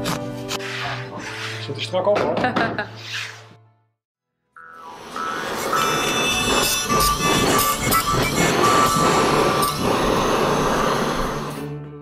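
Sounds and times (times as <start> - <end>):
background music: 0.0 - 12.0
power tool scraping wood: 5.1 - 11.6.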